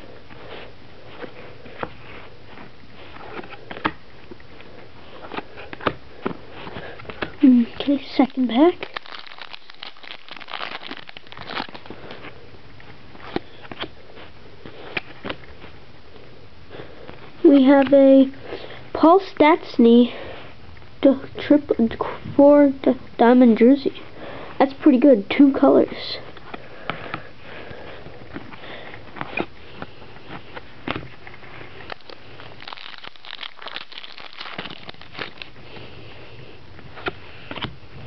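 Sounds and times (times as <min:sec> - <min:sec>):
wrapper crinkling: 0:07.5 - 0:12.3, 0:31.4 - 0:35.6.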